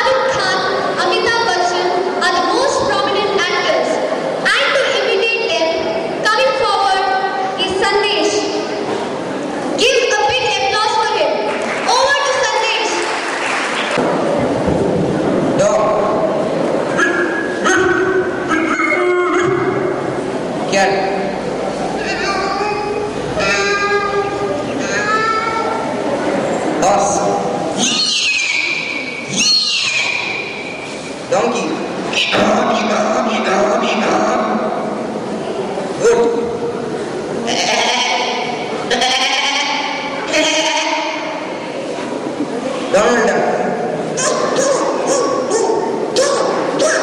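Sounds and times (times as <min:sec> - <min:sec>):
boy calling through microphone: 0:00.0 - 0:08.8, 0:09.8 - 0:13.1, 0:22.0 - 0:26.0, 0:27.0 - 0:30.5, 0:31.3 - 0:34.8, 0:37.5 - 0:41.5
person imitating dog yelps: 0:16.9 - 0:19.7, 0:44.2 - 0:47.0.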